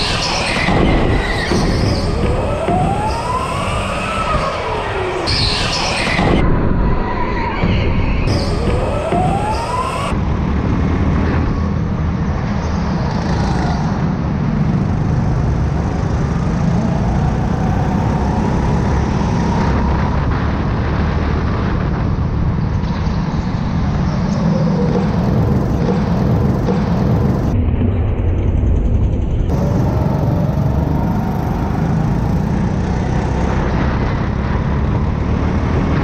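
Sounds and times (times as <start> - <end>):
go-kart running: 24.6 - 36.0.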